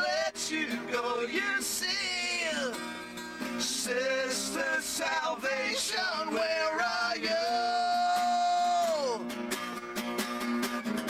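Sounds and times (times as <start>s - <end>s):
man singing with pitch slides: 0.0s - 9.2s
acoustic guitars playing: 0.0s - 11.0s.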